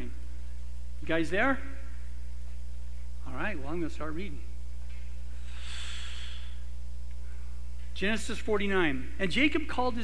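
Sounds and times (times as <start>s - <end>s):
low electrical hum: 0.0s - 10.0s
man breathing into microphone: 5.3s - 7.6s.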